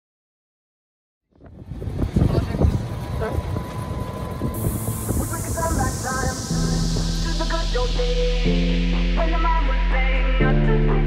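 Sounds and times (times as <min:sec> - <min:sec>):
hiss: 0:04.6 - 0:10.4.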